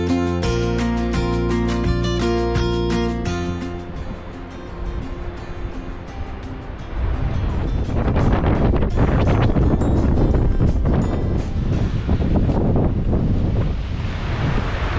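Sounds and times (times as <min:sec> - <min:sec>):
background music: 0:00.0 - 0:12.9
wind buffeting microphone: 0:03.2 - 0:14.9.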